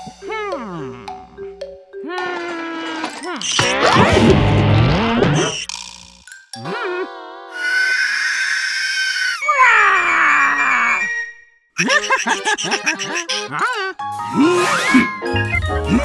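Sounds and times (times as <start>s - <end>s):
cartoon music: 0.0s - 5.7s, 6.6s - 8.1s, 11.8s - 16.0s
cartoon creature screeching cry: 6.7s - 11.4s
warbling call: 7.6s - 9.5s.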